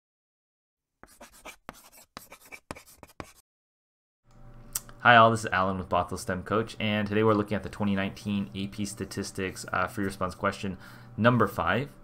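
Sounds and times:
chalk writing on chalkboard: 1.0 - 3.4.

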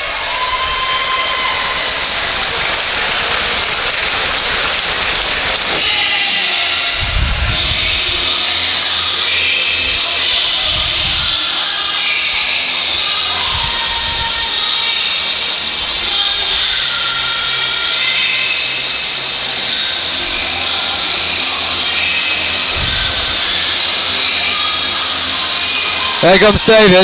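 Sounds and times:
crowd din: 0.0 - 27.0
music over sound system: 4.0 - 27.0.

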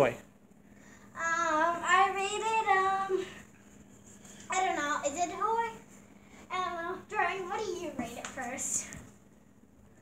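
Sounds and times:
girl singing: 1.1 - 3.4, 6.5 - 8.6.

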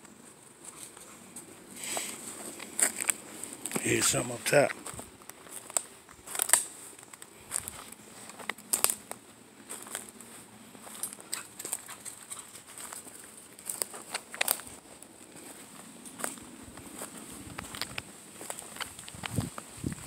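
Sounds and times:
footsteps crunching on dry leaves: 0.1 - 20.0.

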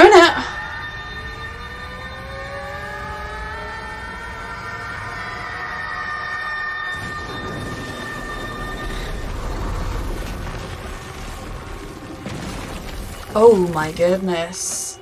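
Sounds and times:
sustained tones gliding upward: 0.0 - 11.2
low rumble: 6.8 - 14.2.

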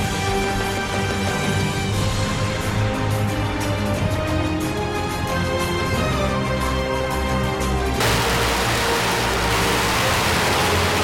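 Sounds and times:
firecrackers crackling: 8.0 - 11.0.

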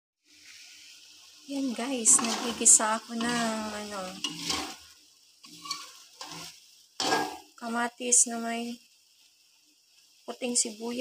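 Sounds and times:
light sizzle: 0.2 - 11.0
metal spatula scraping a pan: 1.6 - 7.6.

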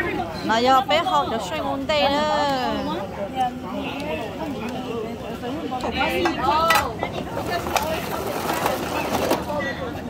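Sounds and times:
water boiling: 5.6 - 10.0.

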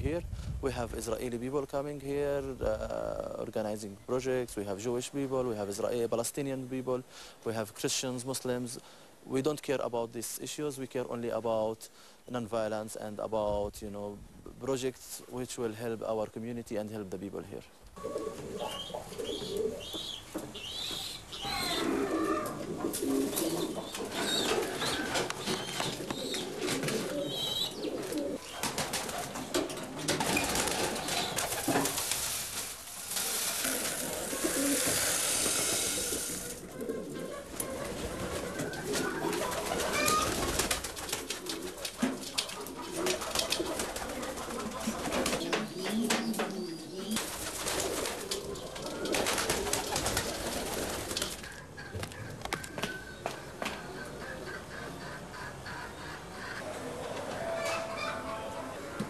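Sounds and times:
pigeons cooing: 18.0 - 32.0, 33.2 - 59.0
hiss: 32.0 - 36.6.

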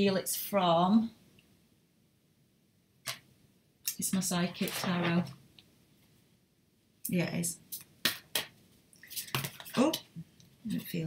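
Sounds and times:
cards shuffling by hand: 7.8 - 10.0.

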